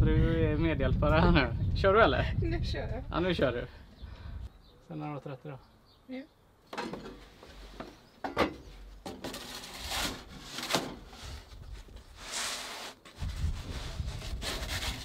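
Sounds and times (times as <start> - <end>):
pizza peel scraping and knocking: 9.2 - 15.0.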